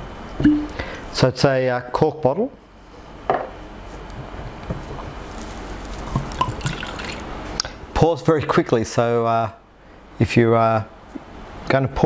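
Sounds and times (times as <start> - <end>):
liquid pouring into a glass: 6.0 - 7.3.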